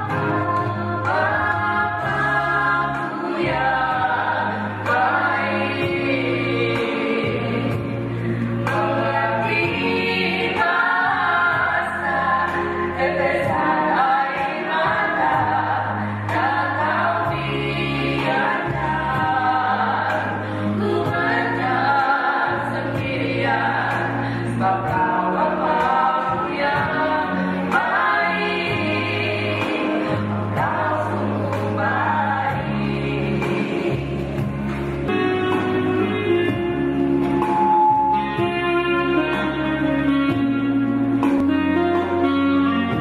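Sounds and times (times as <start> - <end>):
low bass notes: 0.0 - 43.0
women singing into microphones: 0.0 - 43.0.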